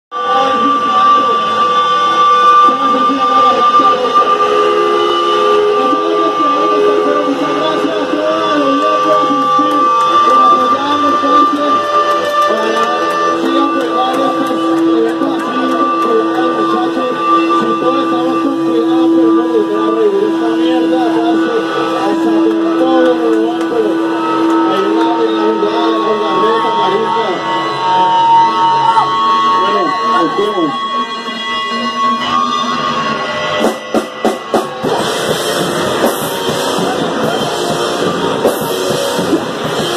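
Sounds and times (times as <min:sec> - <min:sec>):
people talking: 0:00.1 - 0:28.2, 0:28.9 - 0:39.9
electric bass notes: 0:00.1 - 0:39.9
electric guitar notes: 0:00.1 - 0:39.9
high-pitched ringing tone: 0:00.1 - 0:39.9.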